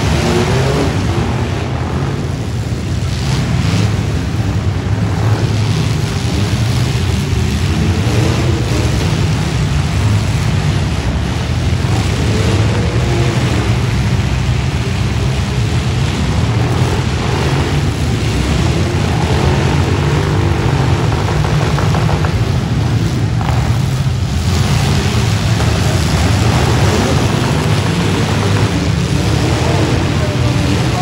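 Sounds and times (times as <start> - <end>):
truck engines revving: 0.0 - 31.0.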